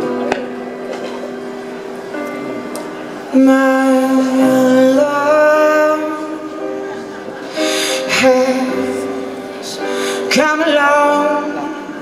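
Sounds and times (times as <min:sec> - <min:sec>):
held keyboard chord: 0:00.0 - 0:12.0
person singing: 0:03.2 - 0:12.0
breathy hiss: 0:07.4 - 0:08.1, 0:09.1 - 0:10.3.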